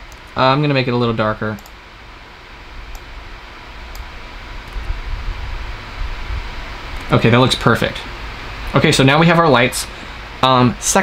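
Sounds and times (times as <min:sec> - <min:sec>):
fan-like hiss: 0:00.0 - 0:11.0
faint clicks: 0:01.6 - 0:01.8
low rumble: 0:04.4 - 0:07.3.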